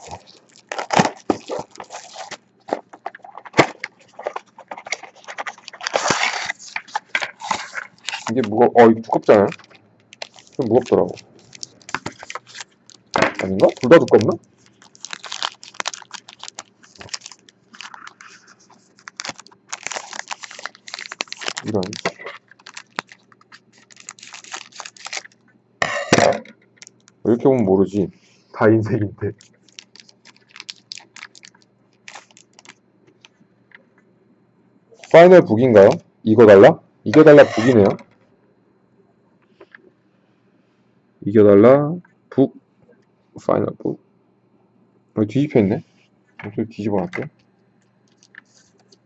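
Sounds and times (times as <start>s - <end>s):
shrink-wrap crinkling and tearing: 0.0s - 25.4s, 29.4s - 32.8s.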